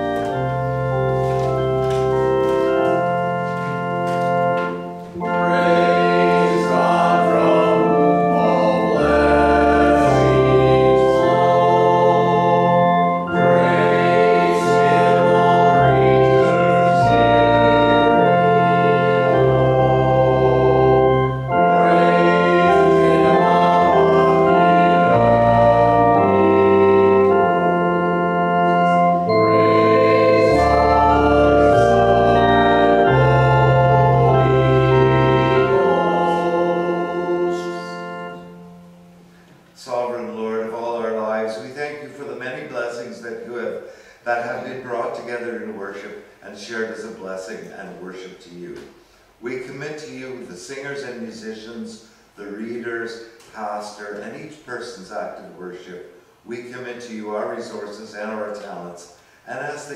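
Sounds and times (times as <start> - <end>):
church organ chords: 0.0 - 59.9
voices singing: 4.8 - 38.8.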